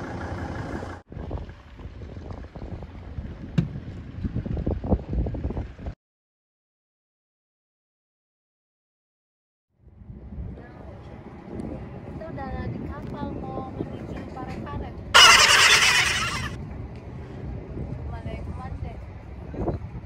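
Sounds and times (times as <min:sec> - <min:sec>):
ferry engine rumble: 0:00.0 - 0:05.8
wind: 0:00.0 - 0:06.0, 0:09.7 - 0:20.0.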